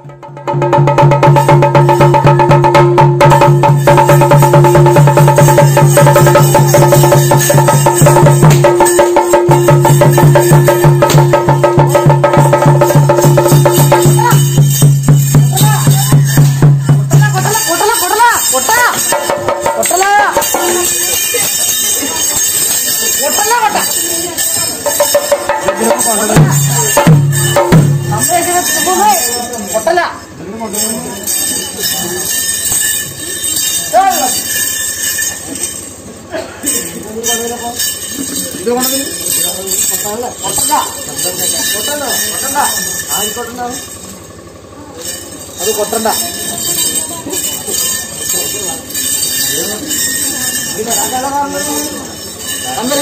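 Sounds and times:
percussion ensemble of drums and cymbals: 0:00.0 - 0:53.0.

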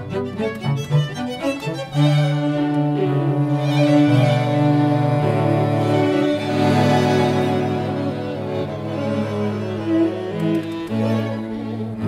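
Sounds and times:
low cello notes: 0:00.0 - 0:12.0
string quartet bowed chords: 0:00.0 - 0:12.0.

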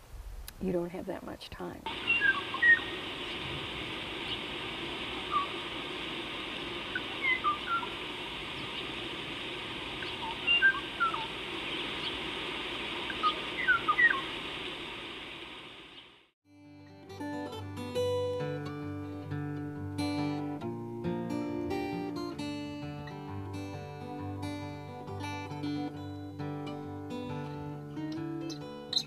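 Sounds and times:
steady background hiss: 0:00.0 - 0:16.4
birds chirping: 0:01.9 - 0:16.2.

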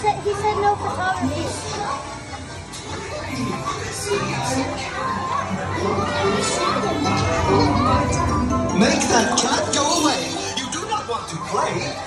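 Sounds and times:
children's voices: 0:00.0 - 0:12.0
playful music: 0:05.7 - 0:11.5.

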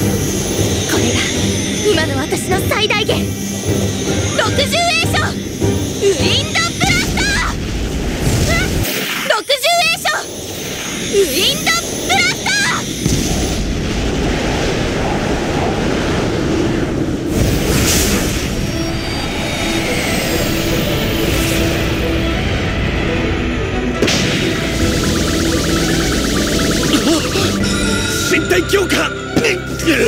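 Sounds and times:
rush of wind: 0:10.2 - 0:23.6
background music: 0:18.8 - 0:30.0.

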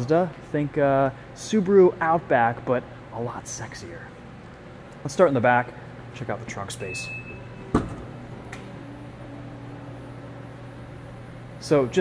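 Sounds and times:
faint motor hum: 0:00.0 - 0:12.0
short high beep: 0:06.8 - 0:07.6.

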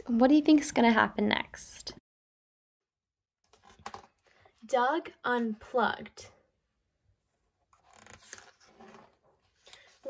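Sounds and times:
book page rustling: 0:07.7 - 0:10.0.

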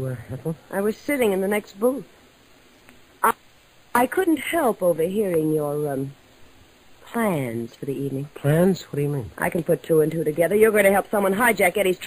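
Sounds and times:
faint background hiss: 0:00.0 - 0:12.0
woman speaking: 0:00.7 - 0:02.1, 0:04.0 - 0:06.2, 0:07.0 - 0:12.0.

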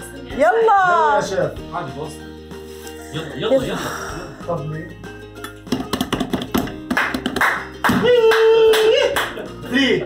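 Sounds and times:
hands drumming on metal pot: 0:05.7 - 0:08.2.

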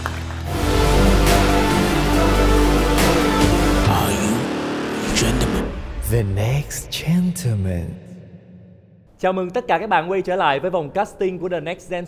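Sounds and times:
theme music: 0:00.0 - 0:09.1.

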